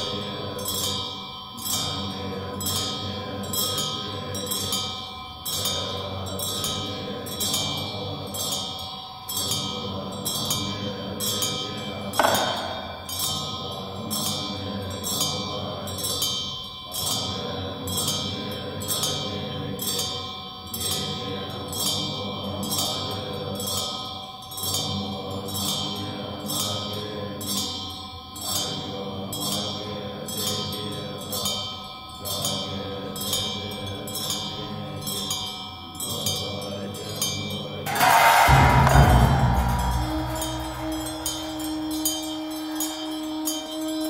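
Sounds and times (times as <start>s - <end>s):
low drone of chanting voices: 0.0s - 44.0s
metallic percussion strikes: 11.3s - 14.4s, 37.9s - 44.0s.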